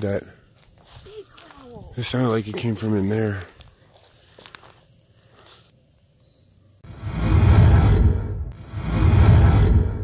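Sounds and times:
loud rushing whoosh with rumble: 0:06.8 - 0:10.0.

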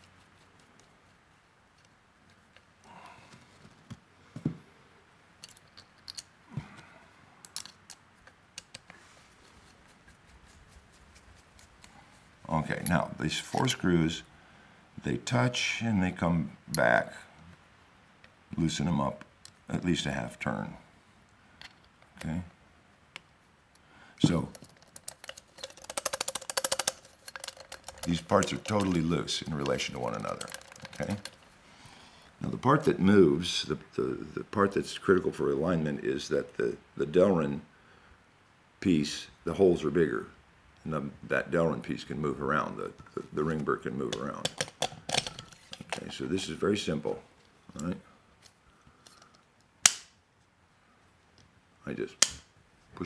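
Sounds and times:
screwdriver clicking on metal screws: 0:24.4 - 0:31.4, 0:44.4 - 0:46.1.

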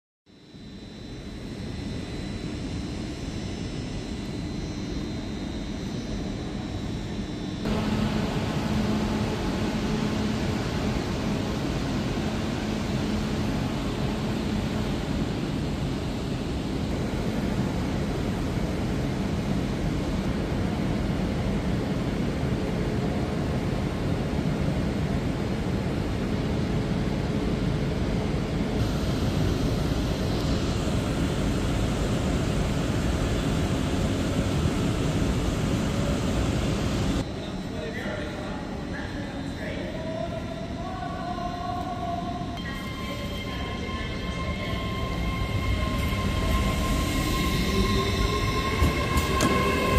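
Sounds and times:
passing train roar: 0:07.6 - 0:16.2, 0:40.8 - 0:49.9.

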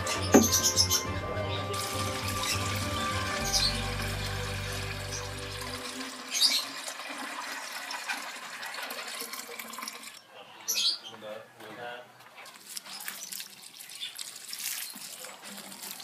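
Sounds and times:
water pouring into plastic can: 0:01.7 - 0:10.2, 0:12.6 - 0:16.0.

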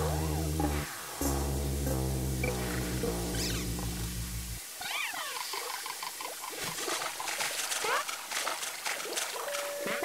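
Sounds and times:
low held music chord: 0:00.0 - 0:04.6
squeaky gliding cartoon sounds: 0:03.3 - 0:03.7, 0:04.8 - 0:05.6.

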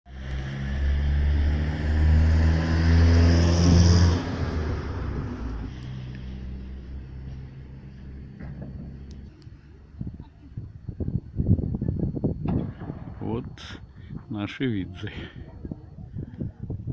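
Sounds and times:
vehicle driving past: 0:00.1 - 0:09.4.

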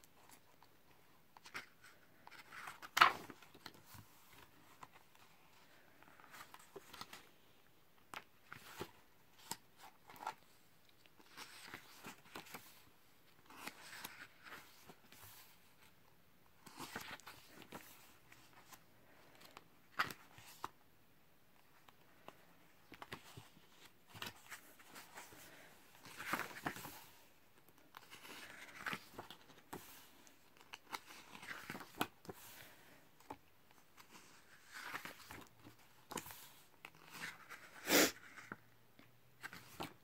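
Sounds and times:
book pages turning: 0:00.2 - 0:07.4, 0:08.0 - 0:16.0, 0:16.6 - 0:20.8, 0:21.6 - 0:38.6, 0:39.4 - 0:40.0.

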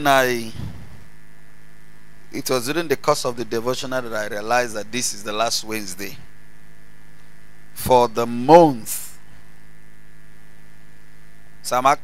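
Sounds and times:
electrical mains hum: 0:00.0 - 0:12.0
microphone hiss: 0:00.0 - 0:12.0.

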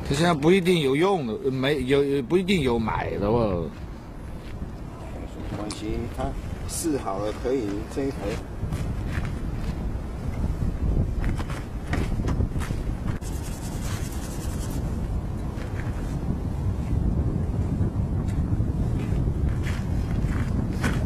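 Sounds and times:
propeller wind noise on microphone: 0:00.0 - 0:21.0.

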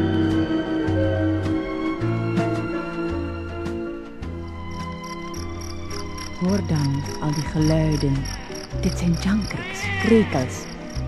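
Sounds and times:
crickets chirping: 0:04.4 - 0:11.0
woman's voice: 0:06.4 - 0:10.9.

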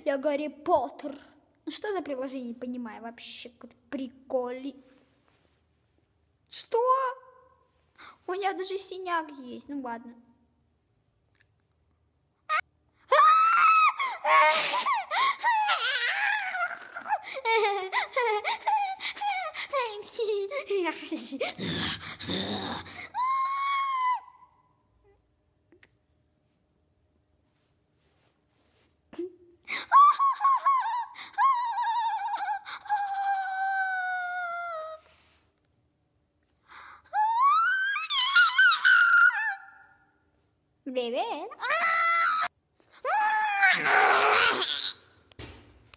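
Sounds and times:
boy squealing and laughing: 0:12.5 - 0:20.6, 0:21.4 - 0:24.5, 0:29.7 - 0:35.1, 0:37.1 - 0:40.0, 0:41.6 - 0:45.0.

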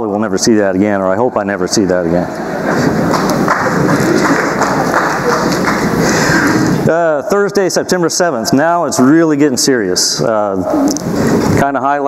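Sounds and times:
audience applauding: 0:02.4 - 0:06.8.

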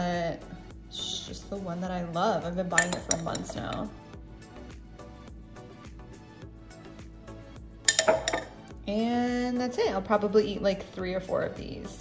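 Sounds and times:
quiet background music: 0:00.0 - 0:12.0
fork clinking against dishware: 0:07.9 - 0:08.6.

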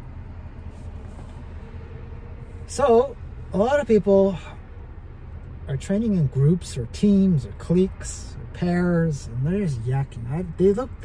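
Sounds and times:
low hum inside car cabin: 0:00.0 - 0:11.0.

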